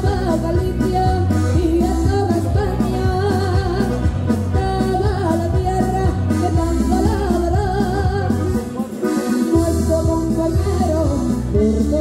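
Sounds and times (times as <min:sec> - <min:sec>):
piano accordion: 0:00.0 - 0:12.0
rhythmic bass line: 0:00.0 - 0:12.0
woman singing: 0:00.0 - 0:12.0.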